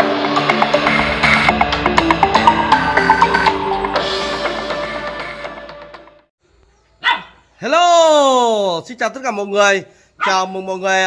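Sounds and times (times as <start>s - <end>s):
dog barking: 7.0s - 7.5s, 10.2s - 10.6s
man calling a greeting: 7.6s - 11.0s.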